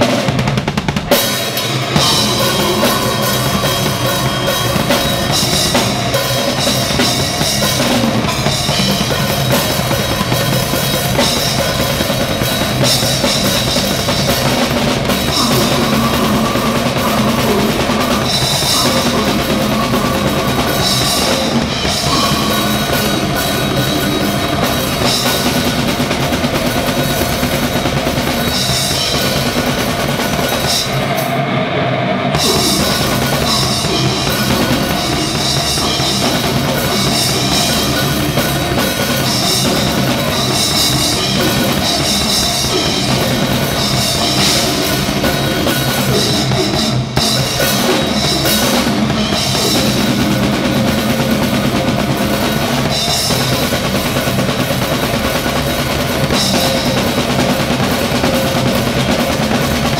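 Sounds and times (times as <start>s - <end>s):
fast drum strokes: 0.0s - 59.9s
metal band playing loud: 0.0s - 59.9s
cymbal crash: 1.1s - 54.1s.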